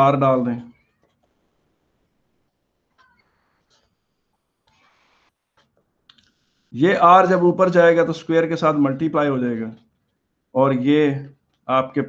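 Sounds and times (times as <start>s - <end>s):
faint high squeak: 2.9s - 5.3s.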